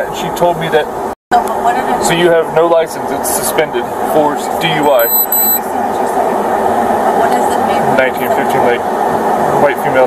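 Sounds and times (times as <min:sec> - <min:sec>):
patrol car cabin noise: 0:04.6 - 0:10.0
short high electronic tone: 0:04.8 - 0:05.6.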